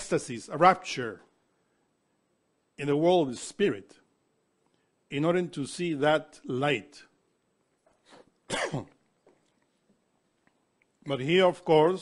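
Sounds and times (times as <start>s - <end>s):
man coughing: 8.1s - 9.0s.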